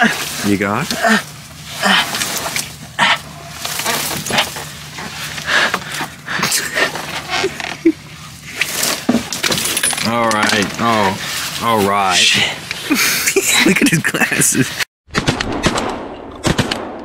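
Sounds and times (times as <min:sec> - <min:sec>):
clothing rustling: 0:00.0 - 0:05.4, 0:06.0 - 0:11.8
dry cane stalks rustling: 0:00.0 - 0:13.0.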